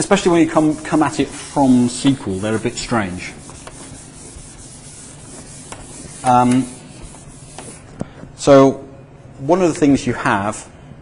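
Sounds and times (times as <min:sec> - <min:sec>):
whiteboard being wiped: 0:00.0 - 0:08.0.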